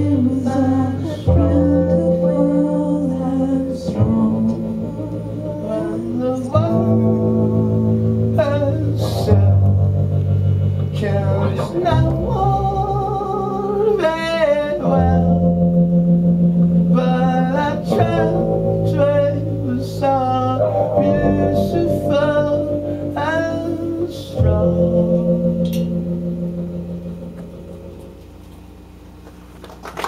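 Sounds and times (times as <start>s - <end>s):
person singing: 0.0s - 10.1s, 10.8s - 15.8s, 16.7s - 26.1s
rock band closing chord: 0.0s - 29.2s.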